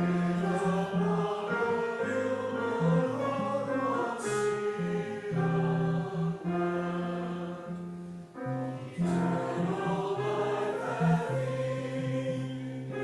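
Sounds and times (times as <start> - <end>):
congregation singing a hymn: 0.0 - 13.0
organ accompaniment: 0.0 - 13.0.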